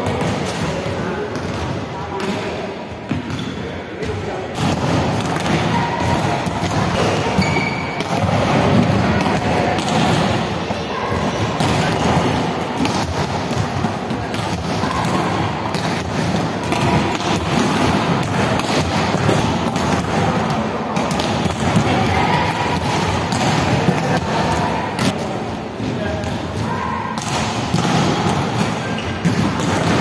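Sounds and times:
background chatter of players: 0.0 - 30.0
steady hall din: 4.1 - 30.0
balls bouncing on floor: 4.6 - 10.4, 11.2 - 25.2, 26.2 - 30.0.

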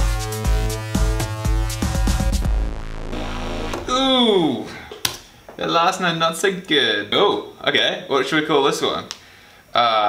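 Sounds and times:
drum machine beat: 0.0 - 4.3
sustained synth chords: 0.5 - 4.2.

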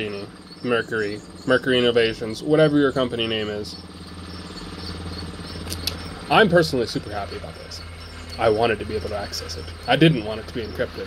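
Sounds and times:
faint insect-like chirping: 0.0 - 11.0
steady low hum: 0.0 - 11.0
light clicks: 5.6 - 6.0.

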